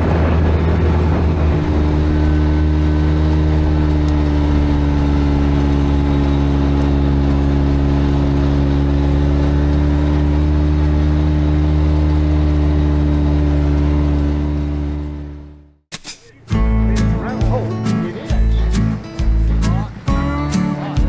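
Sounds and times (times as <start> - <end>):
utility vehicle engine running: 0.0 - 15.8, 16.5 - 21.0
tyre and road noise: 0.0 - 21.0.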